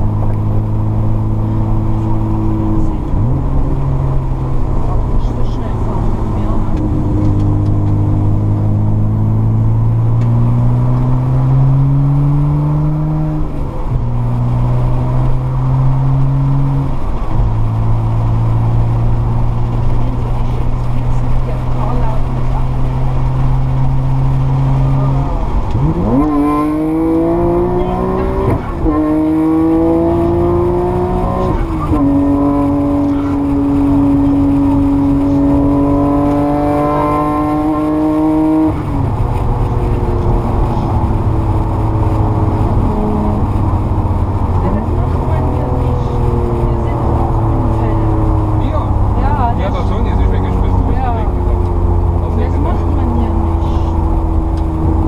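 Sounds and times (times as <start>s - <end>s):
car engine revving: 0.0s - 55.0s
woman talking: 4.9s - 6.9s, 19.9s - 23.3s, 44.6s - 48.2s, 49.2s - 49.6s.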